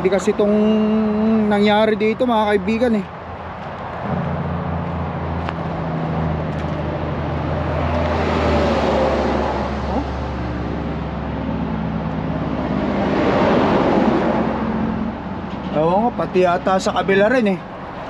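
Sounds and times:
highway traffic passing: 0.0 - 18.0.

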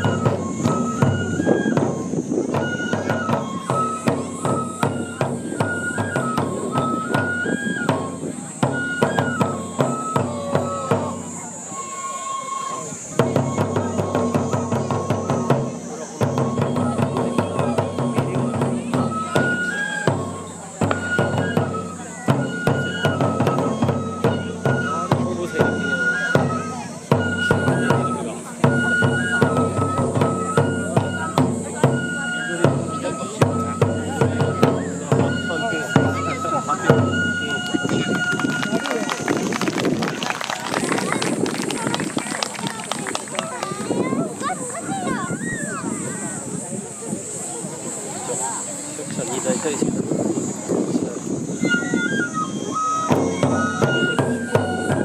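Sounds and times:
barrel drum beating: 0.0 - 11.7, 13.0 - 45.2, 53.0 - 55.0
bamboo flute melody: 0.0 - 55.0.

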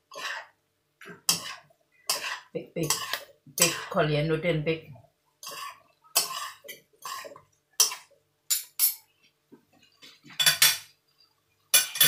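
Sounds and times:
metal utensils scraping a wok: 0.0 - 4.1, 5.4 - 9.0.

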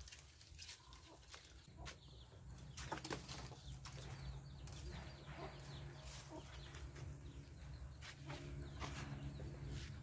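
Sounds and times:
branches rustling: 0.0 - 1.9
chickens clucking: 0.1 - 10.0.

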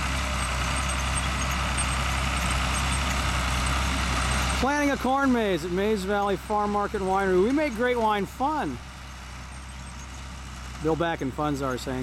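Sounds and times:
distant tractor engine: 0.0 - 12.0.

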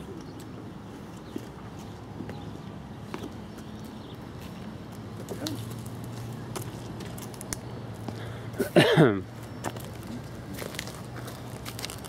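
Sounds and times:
footsteps on dirt and grass: 3.0 - 8.2, 9.5 - 12.0.

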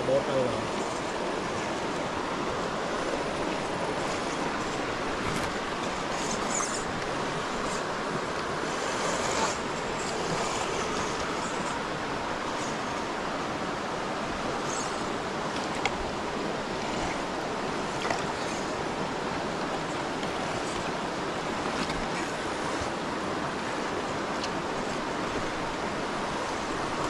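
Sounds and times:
shallow river flowing over rocks: 0.0 - 27.0.

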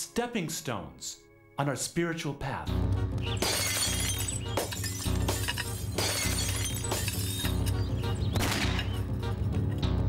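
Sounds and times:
dramatic background music: 2.6 - 10.0
glass breaking: 3.4 - 7.8.

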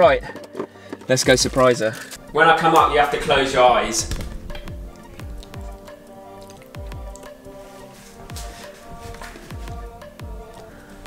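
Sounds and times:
held synth chords: 2.2 - 11.0
deep kick drum beat: 4.0 - 6.0, 6.8 - 7.3, 8.3 - 10.5.

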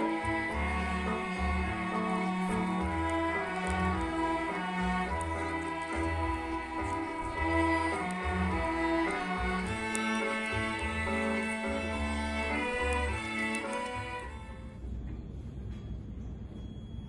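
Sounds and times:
string ensemble playing: 0.0 - 14.8.

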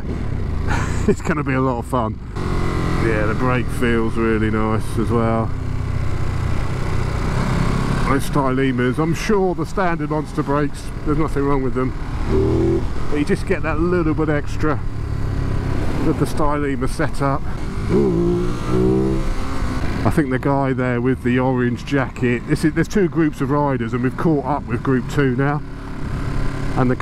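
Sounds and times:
motorcycle engine running: 0.0 - 27.0.

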